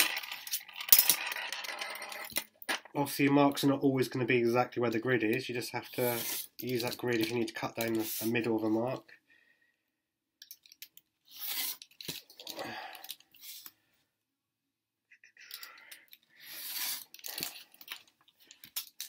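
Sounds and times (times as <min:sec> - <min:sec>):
blade scratching on vinyl: 0:05.8 - 0:06.6.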